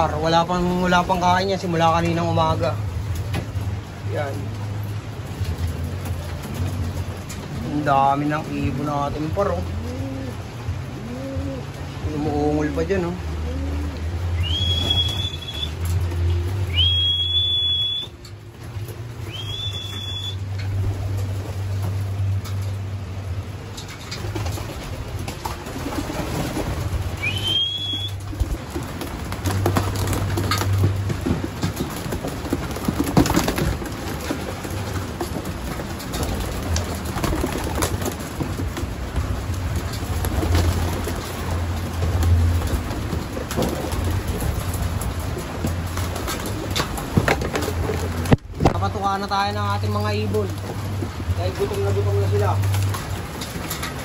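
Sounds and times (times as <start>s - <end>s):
wings flapping and fluttering: 0.0s - 54.0s
pigeons cooing: 5.7s - 18.1s, 18.8s - 21.8s, 24.0s - 48.3s
short high whistles: 14.4s - 15.8s, 16.7s - 18.1s, 19.3s - 20.4s, 27.2s - 28.2s.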